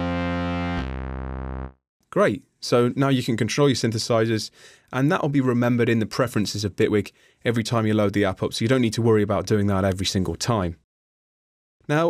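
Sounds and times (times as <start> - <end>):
synthesizer chords: 0.0 - 1.8.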